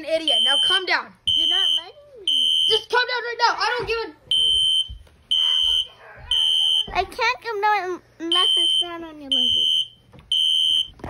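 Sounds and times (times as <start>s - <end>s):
fire alarm beeping: 0.2s - 3.0s, 4.3s - 6.9s, 8.3s - 11.0s.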